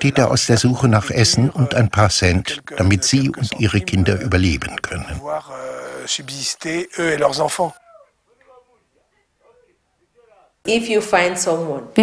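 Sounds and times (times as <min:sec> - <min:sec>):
man speaking: 0:00.0 - 0:10.6.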